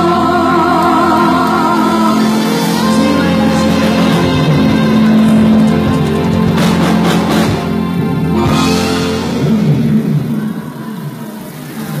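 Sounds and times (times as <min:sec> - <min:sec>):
live band music: 0:00.0 - 0:10.8
crowd noise: 0:00.0 - 0:12.0.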